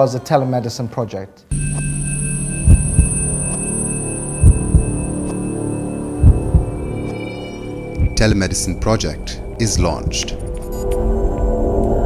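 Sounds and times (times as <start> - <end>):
heartbeat thumps: 2.6 - 3.5, 4.4 - 5.4, 6.2 - 7.1, 7.9 - 10.6.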